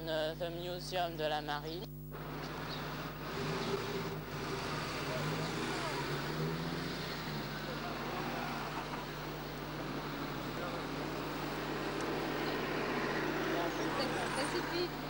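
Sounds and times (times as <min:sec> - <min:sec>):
murmur of voices: 0:03.7 - 0:15.0.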